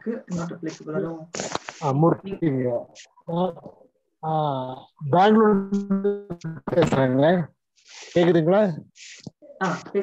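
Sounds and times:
person calling over video call: 0.0 - 10.0.

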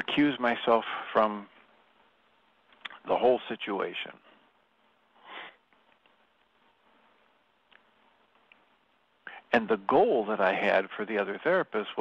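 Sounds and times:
faint room noise: 0.0 - 12.0
man sniffing: 5.2 - 5.6.

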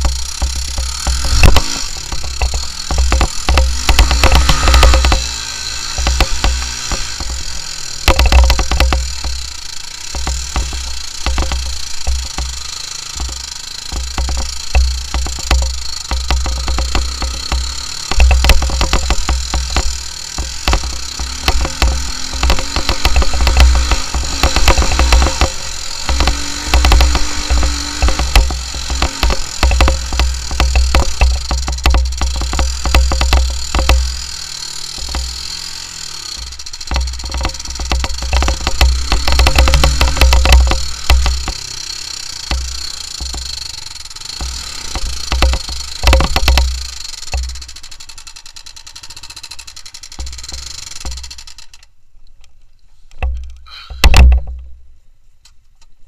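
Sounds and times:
knocks and rattles from bumps: 0.0 - 51.9, 53.1 - 54.8
atv engine running: 0.0 - 52.0.

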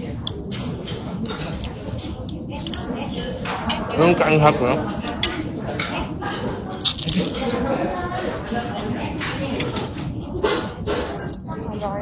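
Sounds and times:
indistinct chatter of voices: 0.0 - 12.0
plates and cutlery clinking: 0.3 - 11.9.

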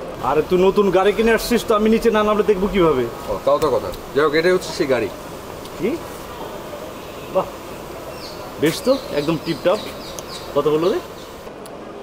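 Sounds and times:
steady background hum: 0.0 - 12.0
man speaking: 0.2 - 6.1, 8.6 - 9.9, 10.5 - 11.2.

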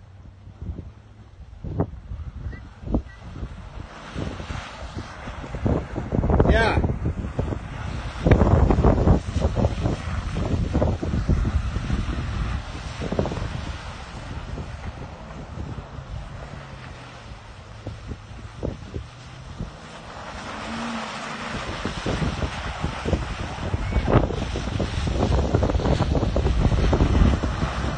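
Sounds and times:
distant truck engine: 0.0 - 27.9
wind buffeting microphone: 0.0 - 27.9.

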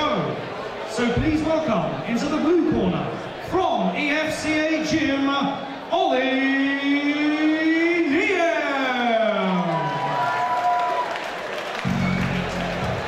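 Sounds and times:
man announcing over microphone: 0.0 - 9.8.

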